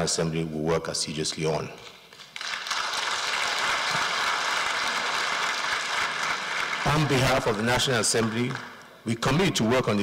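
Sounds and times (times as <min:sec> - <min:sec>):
audience applauding: 0:02.2 - 0:08.9
person speaking: 0:06.8 - 0:10.0.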